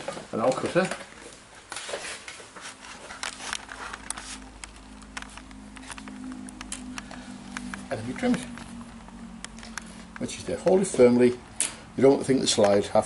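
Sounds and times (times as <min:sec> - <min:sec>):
steady low hum: 0:02.4 - 0:13.0.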